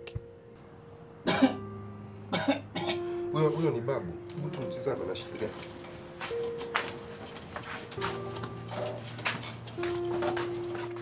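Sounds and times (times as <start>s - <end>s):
soft background music: 0.0s - 11.0s
person coughing: 1.3s - 1.6s, 2.3s - 3.0s.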